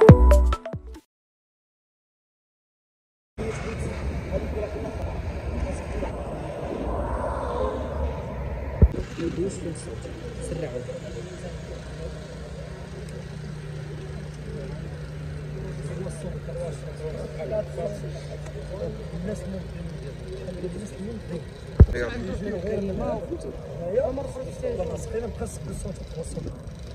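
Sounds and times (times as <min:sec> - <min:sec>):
people talking in background: 0:09.0 - 0:26.9.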